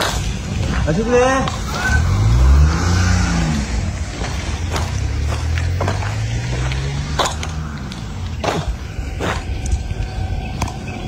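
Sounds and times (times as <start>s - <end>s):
vehicle engine revving: 0.0s - 11.0s.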